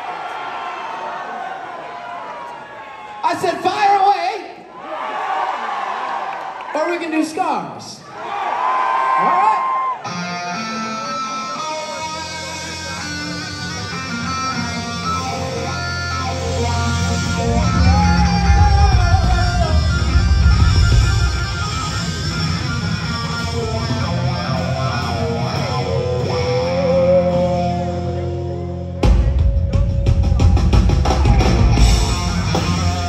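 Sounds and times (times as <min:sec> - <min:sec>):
electric guitars playing: 0:10.0 - 0:33.0
bass guitar: 0:10.1 - 0:33.0.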